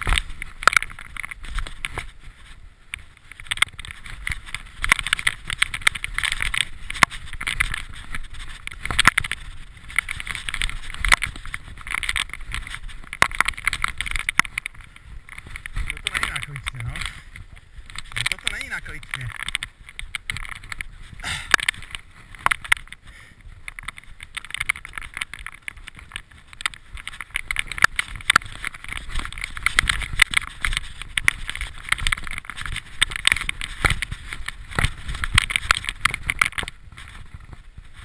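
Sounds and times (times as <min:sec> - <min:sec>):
bike rattling: 0:00.0 - 0:38.0.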